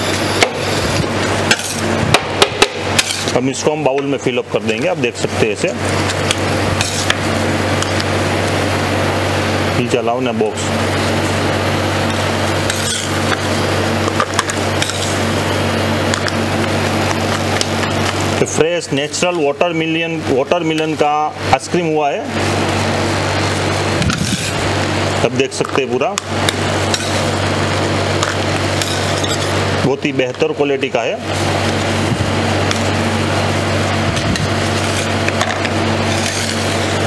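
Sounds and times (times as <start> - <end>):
refrigeration unit humming: 0.0 - 37.0
metal spatulas scraping on steel: 3.0 - 3.3, 12.7 - 13.2, 36.0 - 36.9
steel spatula scraping ice cream: 3.0 - 3.3, 12.7 - 13.3, 14.8 - 15.2, 24.1 - 24.6, 26.9 - 27.4, 28.8 - 29.6, 34.6 - 35.2, 36.0 - 37.0.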